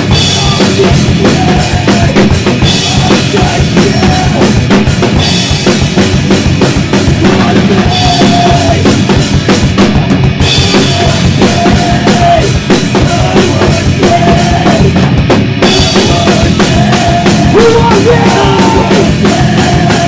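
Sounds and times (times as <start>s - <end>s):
drum kit: 0.0s - 20.0s
electric bass: 0.0s - 20.0s
electric guitar: 0.0s - 20.0s.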